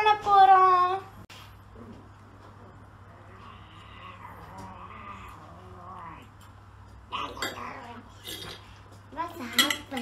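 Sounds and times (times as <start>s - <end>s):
forks clinking on a dish: 9.4s - 10.0s.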